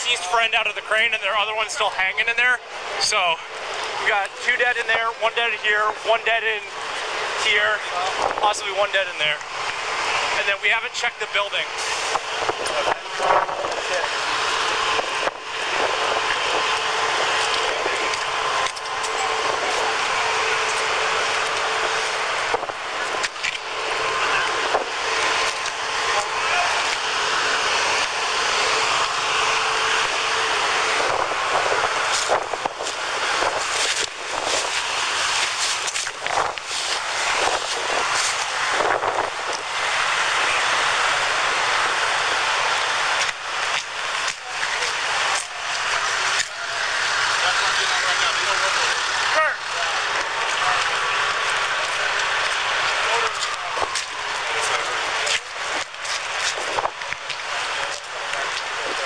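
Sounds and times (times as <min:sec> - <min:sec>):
loud steady outdoor hiss: 0:00.0 - 0:59.0.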